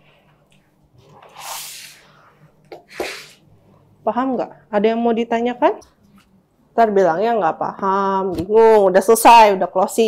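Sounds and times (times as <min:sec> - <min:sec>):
person sneezing: 0:02.8 - 0:03.4.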